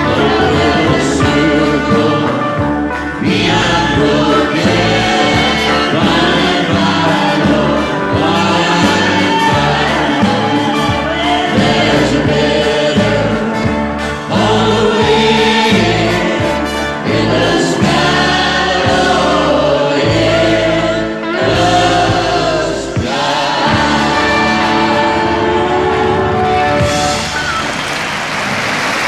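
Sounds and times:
group of voices singing: 0:00.0 - 0:27.2
band with bass: 0:00.0 - 0:29.0.

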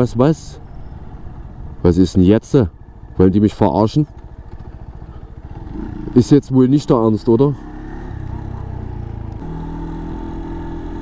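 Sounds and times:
motorcycle engine running: 0:00.6 - 0:11.0.

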